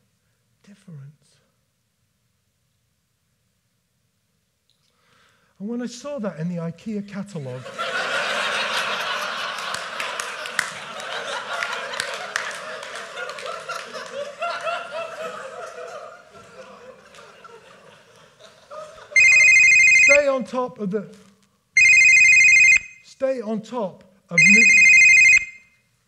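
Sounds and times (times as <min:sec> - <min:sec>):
audience laughter: 0:07.6 - 0:19.2
scattered claps: 0:09.5 - 0:14.3, 0:16.4 - 0:17.4
telephone ringing: 0:19.2 - 0:20.3, 0:21.8 - 0:23.0, 0:24.3 - 0:25.8.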